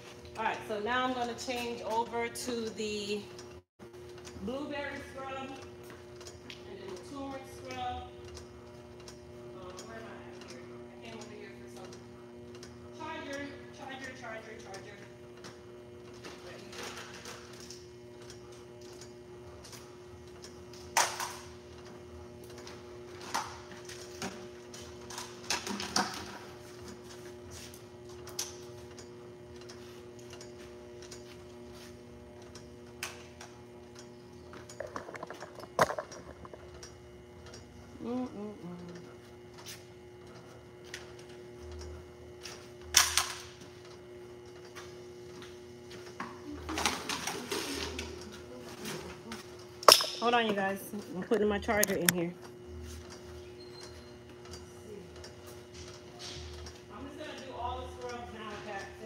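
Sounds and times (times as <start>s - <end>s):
machine humming: 0.0s - 59.0s.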